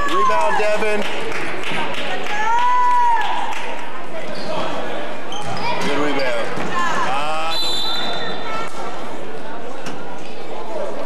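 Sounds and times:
referee whistle: 7.5s - 8.4s.

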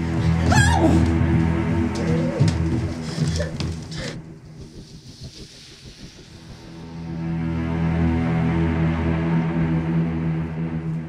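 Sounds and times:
low drone tones: 0.0s - 11.0s.

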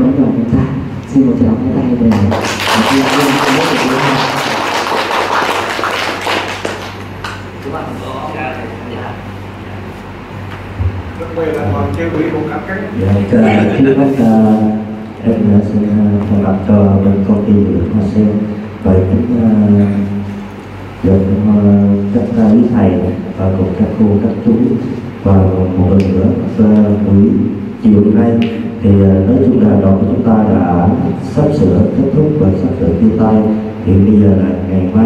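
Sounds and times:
low sound system hum: 0.0s - 35.0s
audience applauding: 2.1s - 7.4s.

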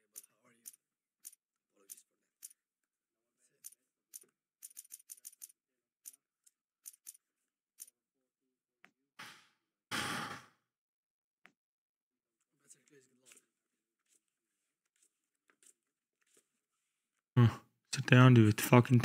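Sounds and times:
casino chips clicking: 4.6s - 5.5s.

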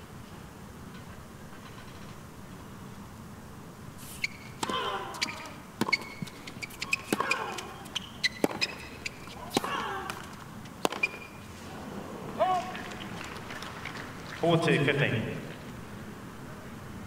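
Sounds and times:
racket strings hitting tennis ball: 4.6s - 11.4s.

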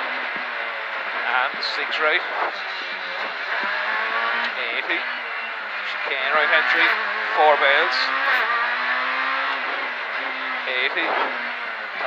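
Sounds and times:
rally car engine at high revs: 0.0s - 12.0s.

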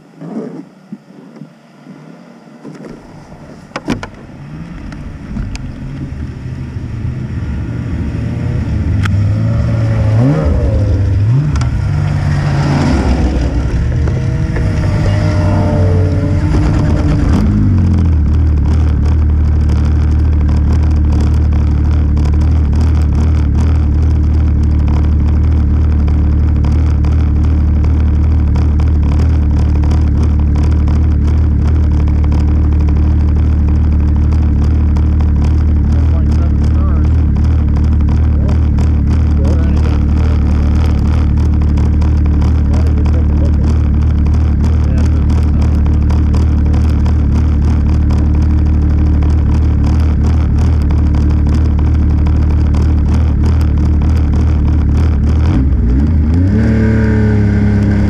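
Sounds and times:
snowmobile engines revving: 1.8s - 58.0s
snowmobile engine idling: 2.1s - 58.0s.

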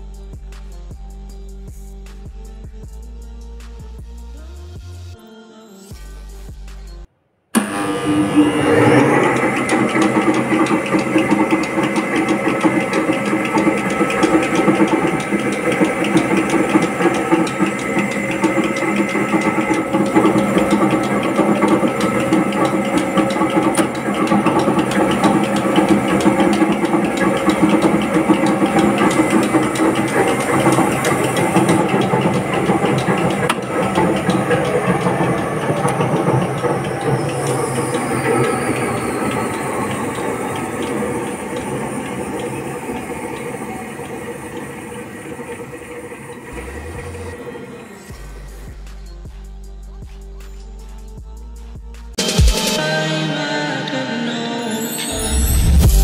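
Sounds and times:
flour mill motor running with rattle: 7.6s - 50.0s.

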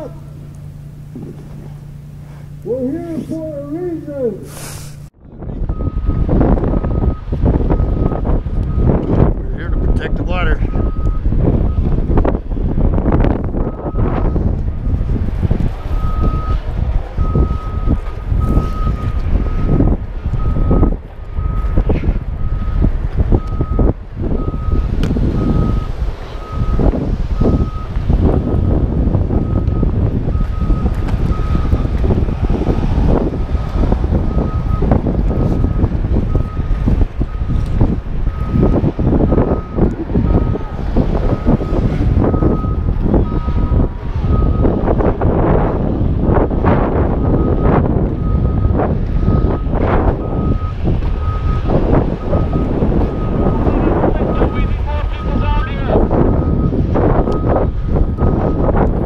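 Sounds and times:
wind buffeting microphone: 0.0s - 4.4s, 5.0s - 59.0s
backup alarm beeping: 5.7s - 8.9s, 17.2s - 21.8s, 23.4s - 32.0s, 38.3s - 40.7s, 41.3s - 44.7s, 47.2s - 58.7s.

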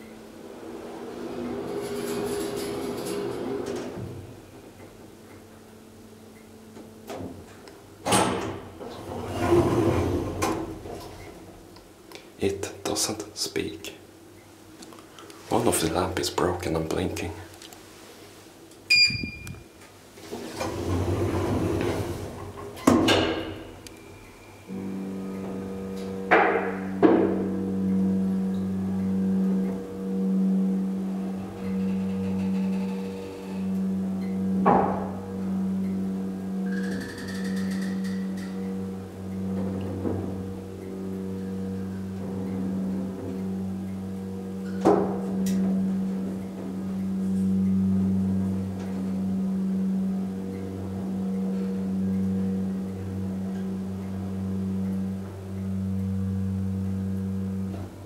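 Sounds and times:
elevator button beep: 18.9s - 19.6s.

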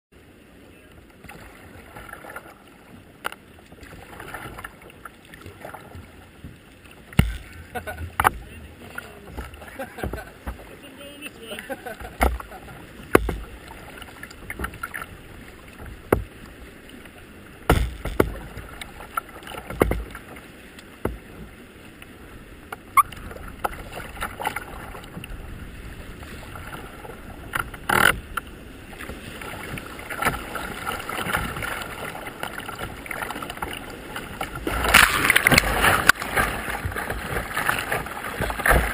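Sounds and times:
paddle splashes: 0.2s - 38.9s
water lapping against a plastic hull: 0.2s - 38.9s
sharp knocks: 7.1s - 7.6s, 17.7s - 18.4s.

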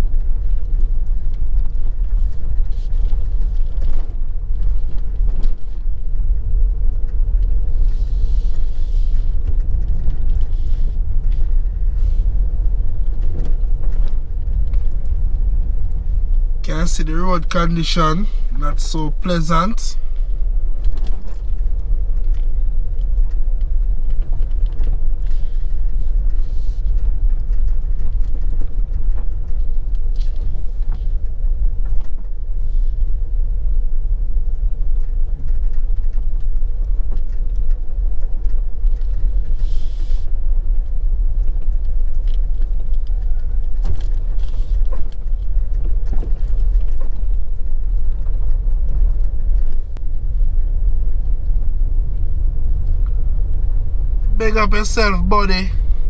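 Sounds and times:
faint steady hum: 0.0s - 56.0s
vehicle rumbling on gravel road: 0.0s - 56.0s.

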